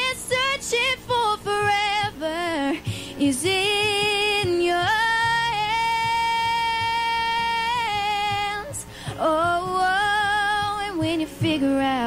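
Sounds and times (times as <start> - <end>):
woman singing country ballad: 0.0 - 12.0.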